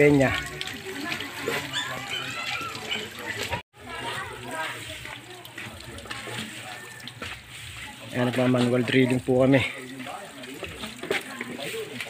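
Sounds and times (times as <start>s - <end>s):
faint voices: 0.0s - 12.0s
water pouring and splashing on concrete: 0.0s - 12.0s.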